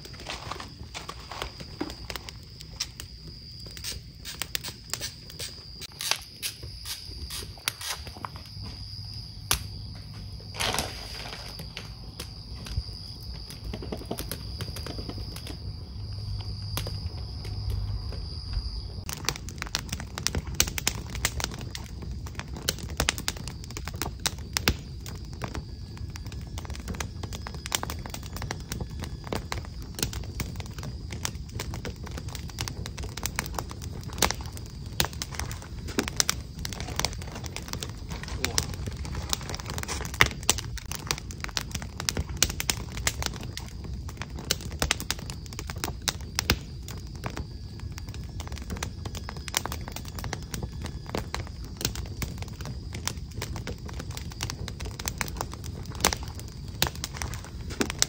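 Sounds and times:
wood fire crackling: 0.0s - 58.0s
pops and snaps of logs: 1.6s - 8.4s, 9.5s - 9.8s, 19.1s - 25.6s, 29.2s - 47.4s
low rumble: 15.5s - 19.8s.

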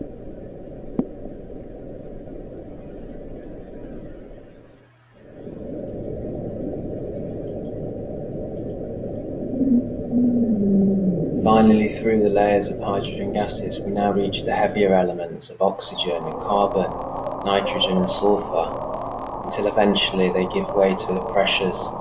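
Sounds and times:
low droning tone: 5.3s - 14.9s, 15.6s - 22.0s
low muffled rumbling: 5.3s - 22.0s.

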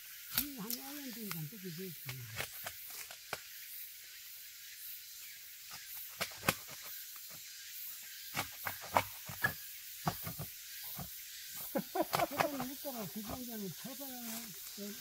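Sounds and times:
steady high hiss: 0.0s - 15.0s
bark cracking and snapping: 0.3s - 1.4s.

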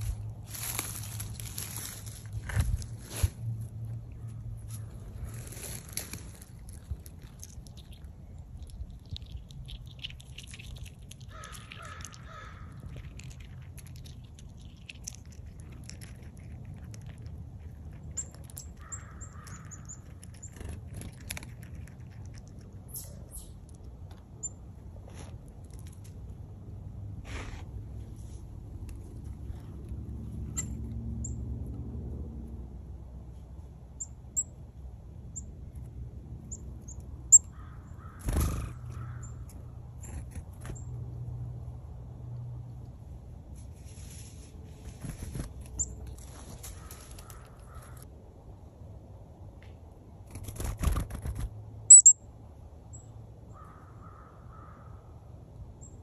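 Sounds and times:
chipmunk cracking seed shells: 5.6s - 24.3s
bird calling: 51.9s - 52.2s
chickadee chirps: 51.9s - 52.2s.

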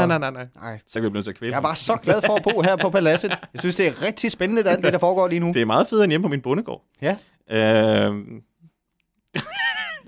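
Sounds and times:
man's drawn-out vocal sound: 7.5s - 8.4s.

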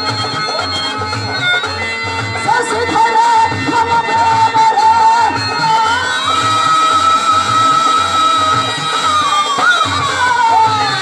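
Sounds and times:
harmonium: 0.0s - 11.0s.

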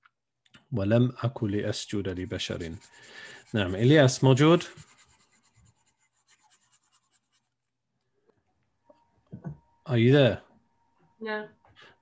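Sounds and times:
stylus scratching on tablet: 1.8s - 7.7s.

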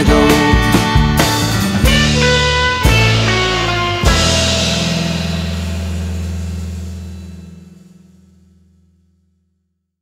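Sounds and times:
rock band chord ringing out: 0.0s - 8.6s
deep bass note: 0.0s - 9.4s.

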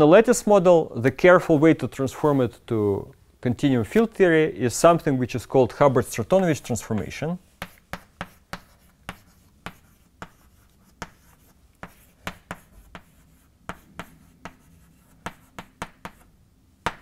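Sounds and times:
chalk tapping and scratching: 6.7s - 17.0s.

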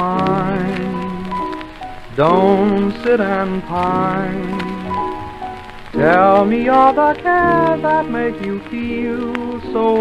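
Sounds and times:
old popular song record melody: 0.0s - 10.0s
record surface crackle: 0.0s - 10.0s.

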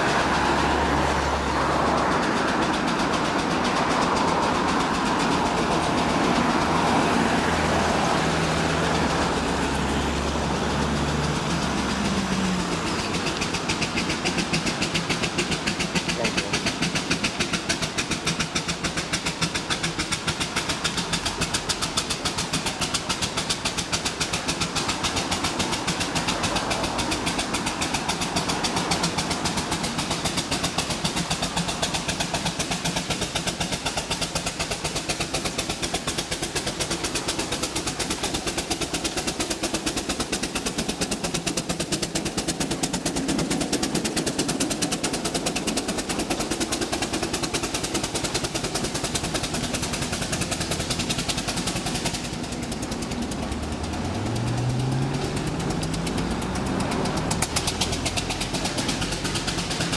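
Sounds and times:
car engine revving: 0.0s - 59.9s
cars passing: 0.0s - 59.9s
steam engine exhaust beating: 0.0s - 59.9s.

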